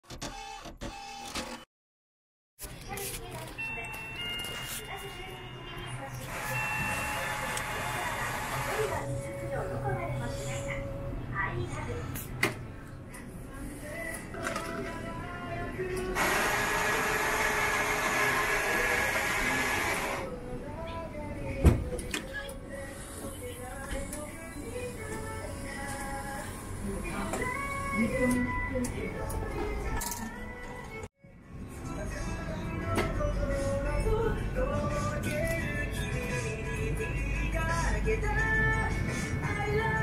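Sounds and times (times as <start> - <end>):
coffee machine grinding beans: 16.2 - 20.2.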